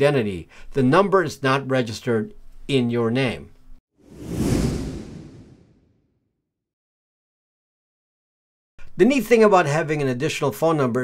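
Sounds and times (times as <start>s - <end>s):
whoosh sound effect: 4.0s - 6.0s.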